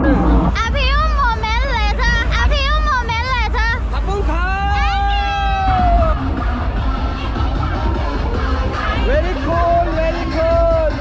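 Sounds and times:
crowd noise: 0.0s - 11.0s
loud party music with bass: 0.0s - 11.0s.

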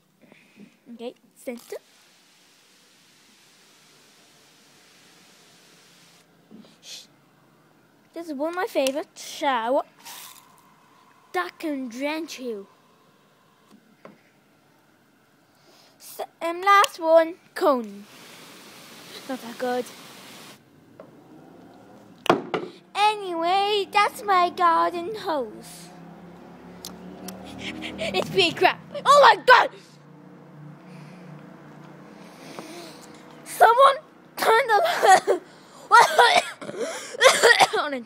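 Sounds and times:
water spraying from hose nozzle: 1.5s - 6.2s, 10.0s - 10.5s, 17.8s - 20.6s.

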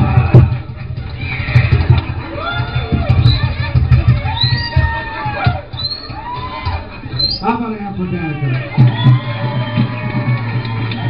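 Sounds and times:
music with pulsing bass beat: 0.0s - 5.9s.

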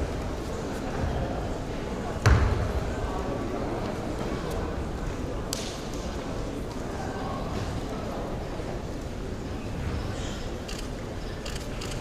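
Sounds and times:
murmur of spectators talking: 0.0s - 12.0s.

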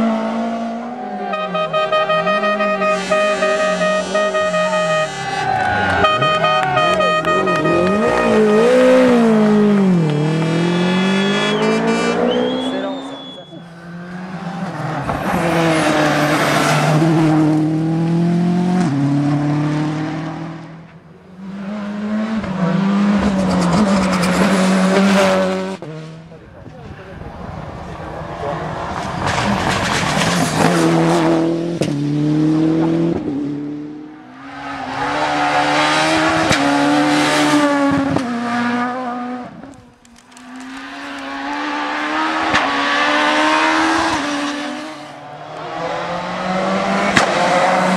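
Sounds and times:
rally cars racing past: 0.0s - 47.9s.

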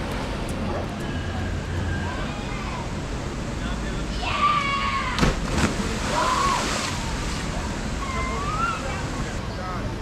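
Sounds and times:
river water rushing: 2.9s - 9.4s
person splashing into water: 5.2s - 7.1s.

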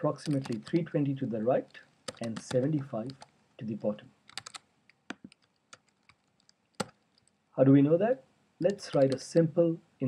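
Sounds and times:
computer keyboard keystrokes: 0.2s - 0.8s, 2.1s - 3.3s, 4.3s - 7.3s, 8.6s - 9.2s.

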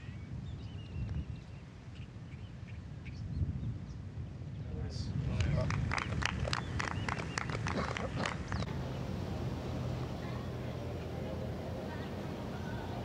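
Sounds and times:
light scattered applause: 5.3s - 8.8s
murmur of crowd voices: 8.7s - 13.0s.

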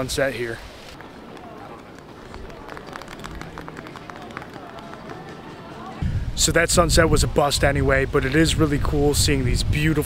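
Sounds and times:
faint distant voices: 0.0s - 7.4s.

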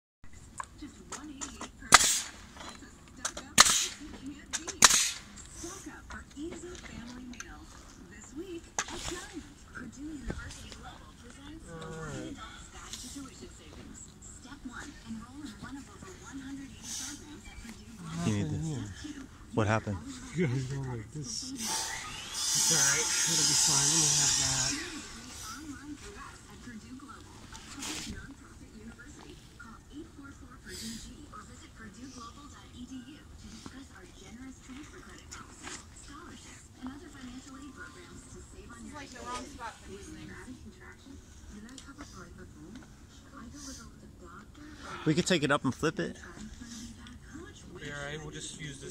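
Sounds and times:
voices talking: 0.4s - 48.9s
nail gun shots: 1.9s - 2.4s, 3.6s - 4.0s, 4.8s - 5.3s.

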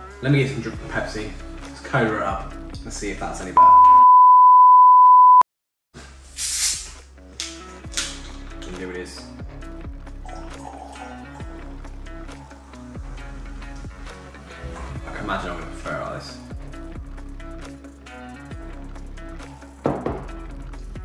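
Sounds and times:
loud steady test-tone beep: 3.6s - 5.4s
background music with steady beat: 7.0s - 21.0s.

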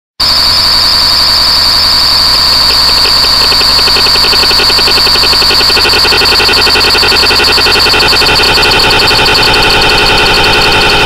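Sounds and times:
fast even electronic pulsing: 0.2s - 11.0s
piercing high electronic tone: 0.2s - 11.0s
noisy hum: 0.5s - 11.0s.

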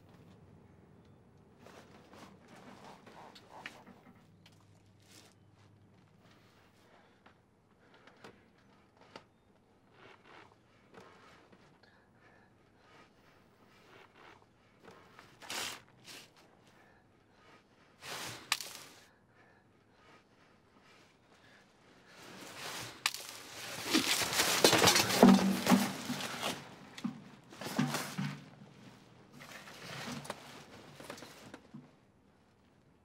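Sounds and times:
papers rustling and scraping: 18.0s - 19.0s, 22.1s - 32.0s.

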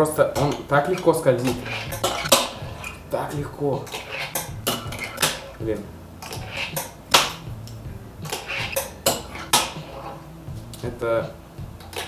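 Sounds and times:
fingerboard wheels rolling: 0.0s - 12.0s
fingerboard clacks: 0.4s - 12.0s.

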